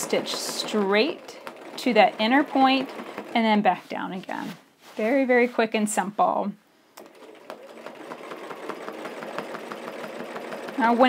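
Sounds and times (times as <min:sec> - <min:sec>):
sewing machine stitching: 0:00.0 - 0:03.6, 0:07.0 - 0:11.0.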